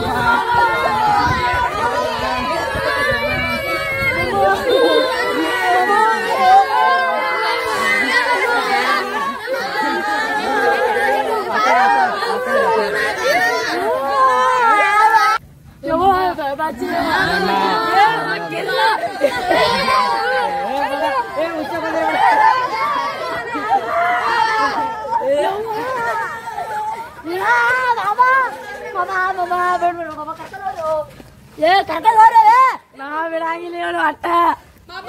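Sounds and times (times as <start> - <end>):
excited group chatter: 0.0 - 35.0
people talking over one another: 0.0 - 35.0.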